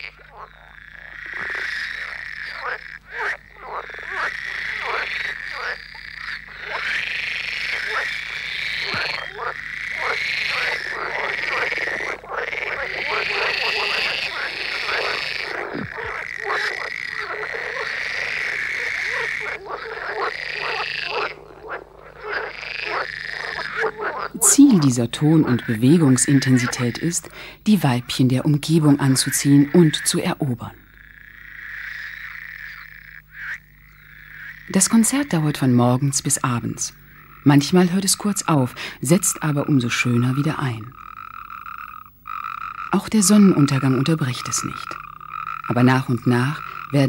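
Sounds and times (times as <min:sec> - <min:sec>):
frogs croaking: 0:00.0 - 0:47.0.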